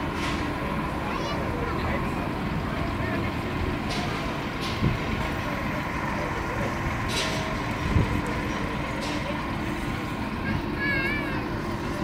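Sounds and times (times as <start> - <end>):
truck engine running: 0.0 - 12.0.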